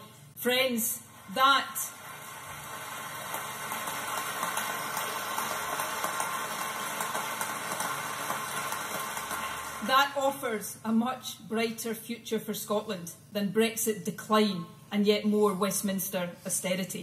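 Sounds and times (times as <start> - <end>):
large audience applauding: 2.1 - 9.8.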